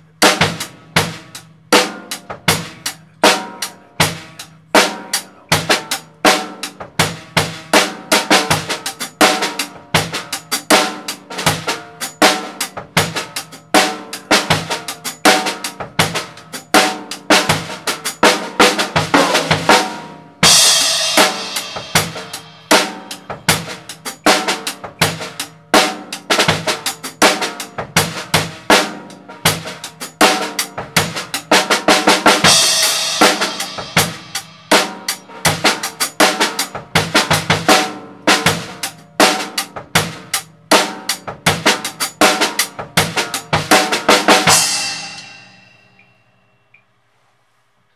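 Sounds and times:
drum kit groove: 0.0 - 46.0
cymbal crash: 20.4 - 23.7, 44.5 - 46.1.

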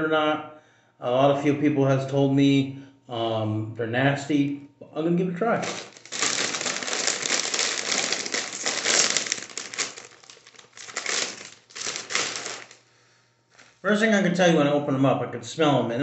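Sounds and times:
chip bag crinkling: 5.6 - 12.8, 13.6 - 13.8.

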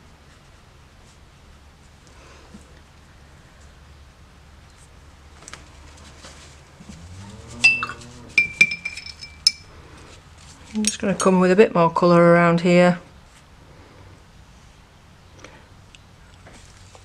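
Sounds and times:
paintbrush clinking on container: 7.6 - 9.7.

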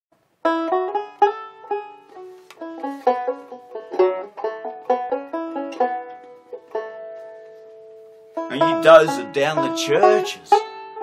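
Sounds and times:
banjo picking: 0.2 - 11.0.

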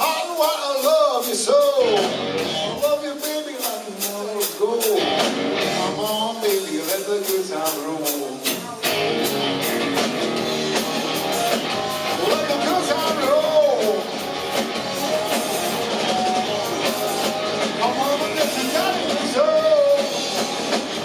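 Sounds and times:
bass guitar: 0.0 - 21.0
drum beat: 0.0 - 21.0
electric guitar bending notes: 1.8 - 2.8, 5.0 - 6.0, 8.7 - 21.0.

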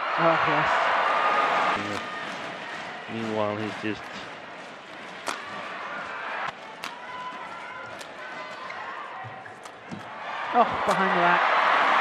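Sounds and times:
racket hitting shuttlecock: 4.9 - 5.8, 6.5 - 11.3.

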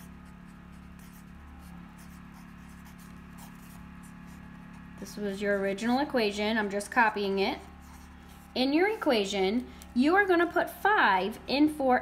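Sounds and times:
pen scratching on paper: 0.0 - 6.2, 7.5 - 9.3
steady low hum: 0.0 - 12.0.

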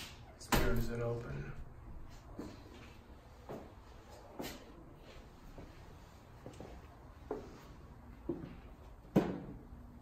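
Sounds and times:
footsteps on hardwood floor: 2.1 - 9.3.

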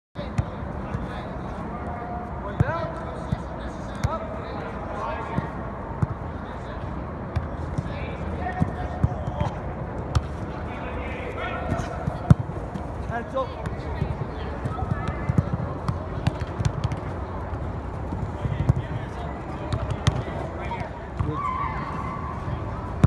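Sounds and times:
balls kicked and bouncing on turf: 0.2 - 23.0.

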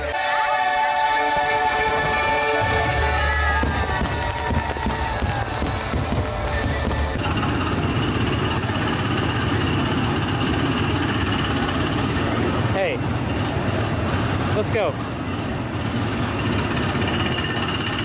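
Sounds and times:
go-kart engines rattling: 7.1 - 18.0.

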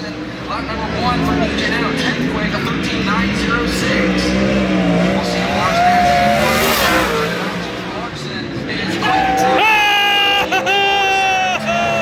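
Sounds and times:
race car engine: 0.0 - 12.0
voices: 0.0 - 12.0.

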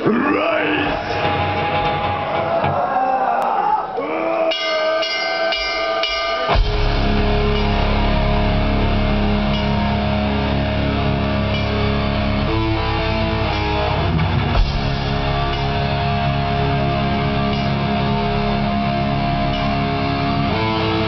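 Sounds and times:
metal band playing live: 0.0 - 3.3, 4.4 - 21.0
electric guitar ringing chords: 4.5 - 21.0.

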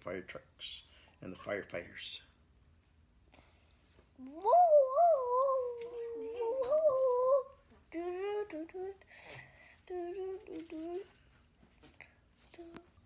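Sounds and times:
child humming: 4.2 - 9.0, 9.9 - 11.1.

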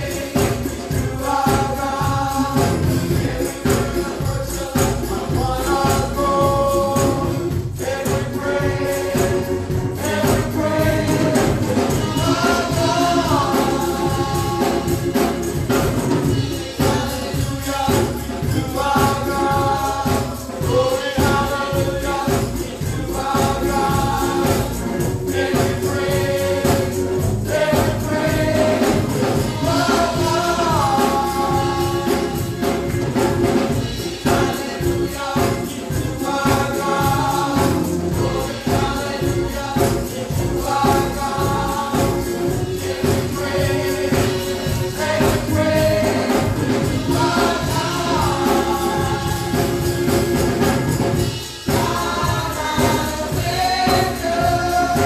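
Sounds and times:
choir singing held notes: 0.0 - 55.0
instrumental backing: 0.0 - 55.0
steady beat: 0.0 - 55.0.

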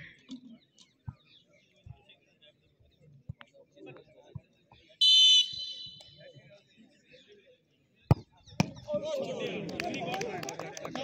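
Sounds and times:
referee's whistle: 5.0 - 6.2.

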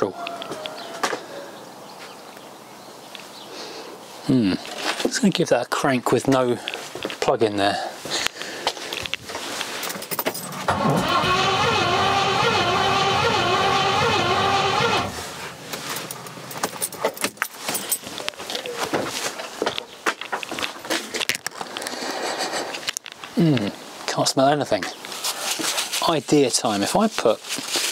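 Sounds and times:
handling clicks and knocks: 8.2 - 10.7, 15.7 - 22.0
starter motor cranking engine: 10.5 - 16.4.

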